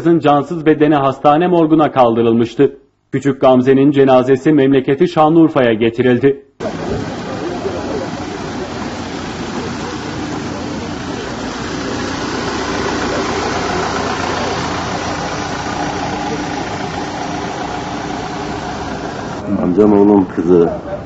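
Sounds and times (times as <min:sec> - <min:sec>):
van engine running: 0:06.6 - 0:21.0.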